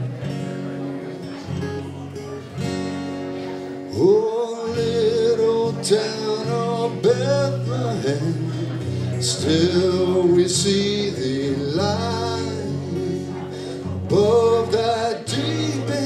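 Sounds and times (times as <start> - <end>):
acoustic guitar: 0.0 - 16.0
man singing: 3.9 - 16.0.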